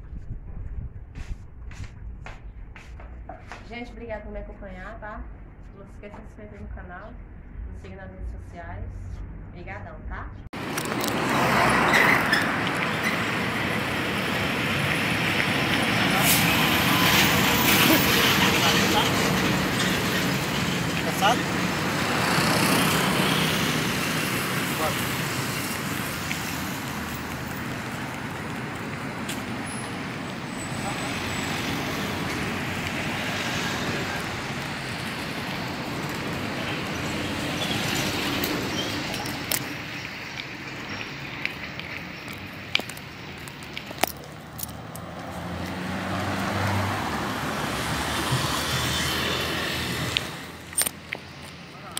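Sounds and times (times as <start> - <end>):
cars passing: 1.8 - 51.9.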